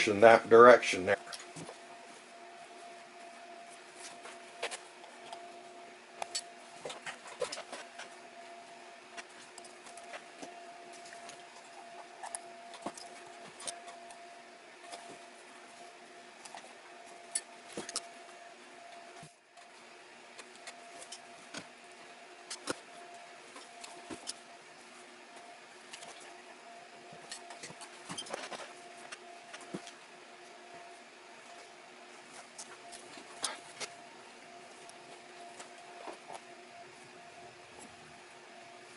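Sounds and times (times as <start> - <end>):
steady background hum: 0.0 - 38.9.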